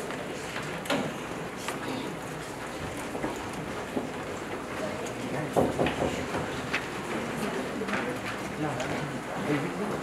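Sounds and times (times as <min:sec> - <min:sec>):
murmur of chatter: 0:00.0 - 0:10.0.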